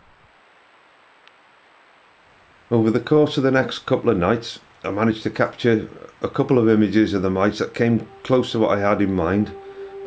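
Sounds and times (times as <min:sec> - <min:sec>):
background hiss: 0:00.0 - 0:10.0
thin high whine: 0:06.6 - 0:10.0.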